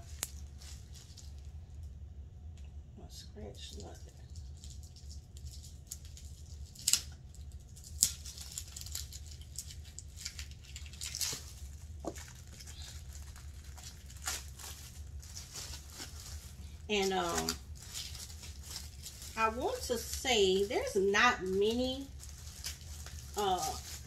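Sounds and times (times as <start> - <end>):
plastic wrap crinkling: 0.0 - 2.0, 3.6 - 24.0.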